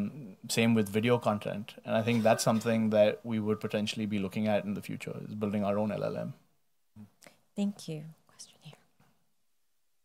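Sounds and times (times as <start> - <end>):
man speaking: 0.0 - 6.4
faint whispered voice: 8.1 - 9.0.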